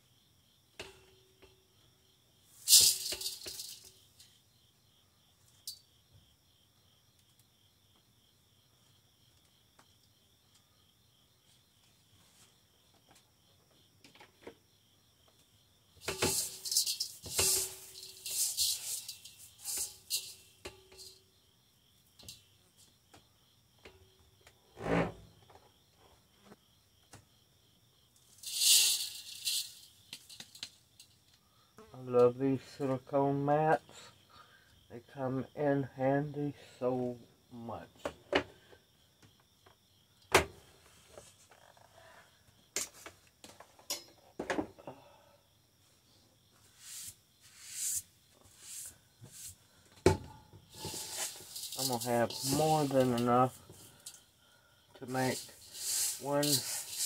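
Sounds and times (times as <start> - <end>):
berries rattling into metal bowl: 2.6 - 4.3, 16.0 - 21.2, 28.3 - 30.8, 50.1 - 54.2, 55.0 - 57.0.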